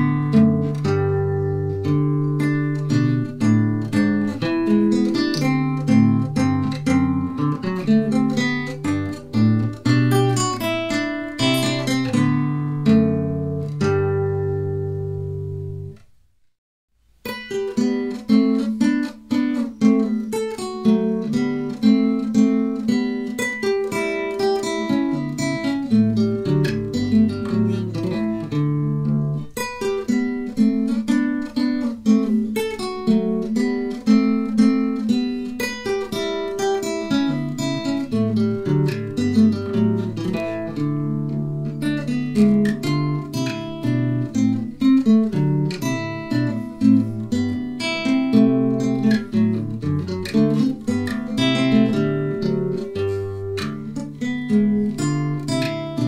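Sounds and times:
classical guitar piece: 0.0 - 16.2, 17.1 - 56.0.

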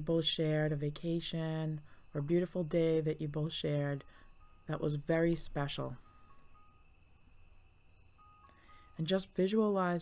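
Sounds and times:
faint high whine: 0.0 - 10.0
soft background music notes: 0.0 - 10.0.

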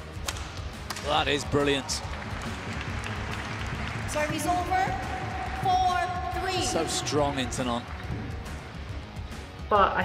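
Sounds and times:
low background music: 0.0 - 10.0
crowd applauding: 0.9 - 8.6.

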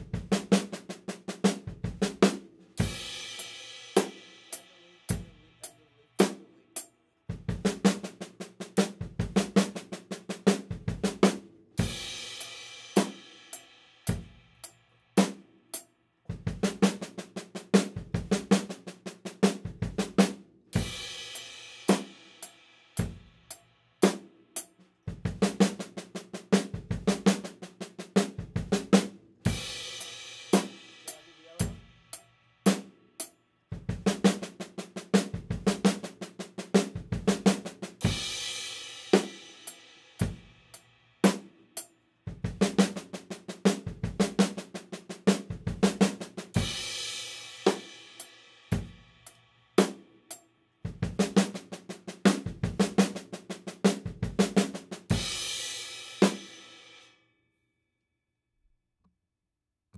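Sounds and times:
drum kit fill: 0.0 - 15.4, 16.3 - 41.6, 42.3 - 50.1, 50.9 - 57.0.

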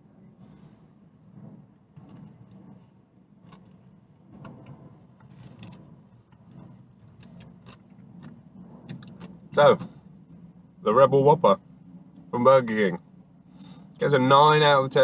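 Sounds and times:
low hum inside car: 0.0 - 15.0.

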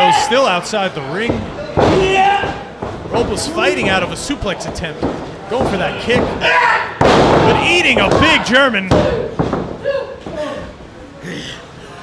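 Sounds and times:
thud on wrestling ring: 5.6 - 9.8.

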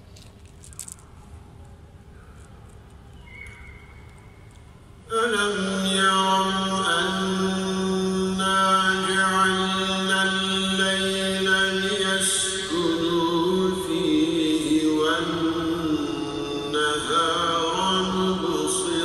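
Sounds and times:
man chanting melodically: 5.0 - 19.0.

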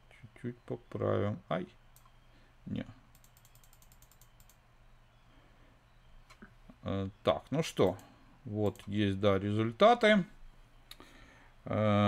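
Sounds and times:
mouse scroll wheel ticking: 3.1 - 4.6, 7.8 - 9.0.

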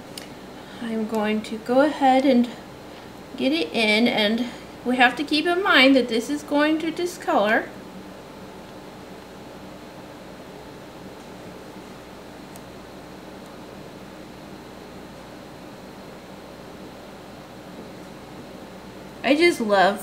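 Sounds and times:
faint hum: 0.0 - 20.0.

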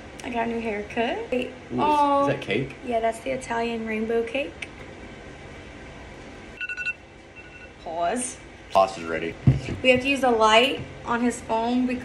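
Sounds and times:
low room noise: 0.0 - 12.0
quick electronic phone beeps: 6.6 - 7.7.

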